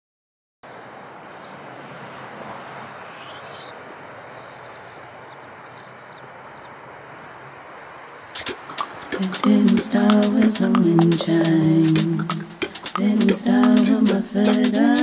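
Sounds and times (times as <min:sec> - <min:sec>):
distant traffic noise: 0:00.6 - 0:15.0.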